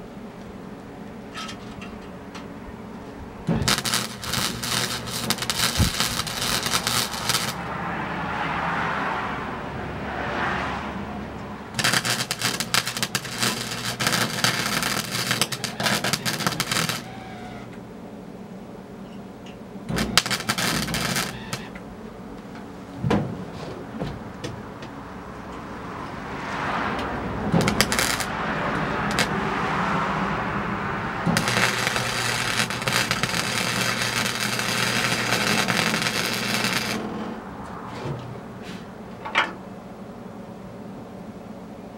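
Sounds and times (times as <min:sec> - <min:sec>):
welder crackling and sizzling: 0:03.4 - 0:07.7, 0:11.7 - 0:17.8, 0:19.9 - 0:21.8, 0:27.5 - 0:28.4, 0:29.0 - 0:29.4, 0:31.2 - 0:37.4.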